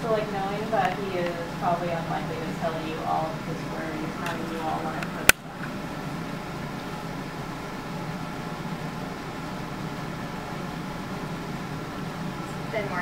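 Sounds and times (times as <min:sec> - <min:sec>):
ventilation hum and hiss: 0:00.0 - 0:13.0.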